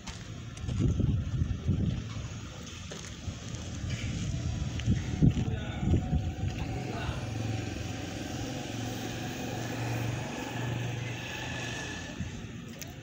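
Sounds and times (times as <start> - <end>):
vehicle engine droning: 0.0 - 13.0.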